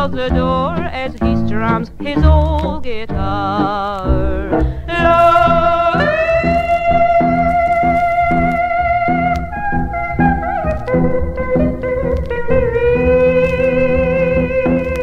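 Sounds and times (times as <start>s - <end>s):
bass: 0.0s - 15.0s
sliding lead instrument notes: 0.0s - 15.0s
strummed rhythm guitar: 0.0s - 15.0s.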